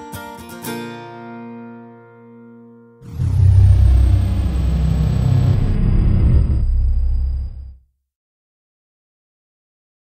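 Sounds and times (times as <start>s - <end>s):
deep rumble: 3.0s - 7.8s.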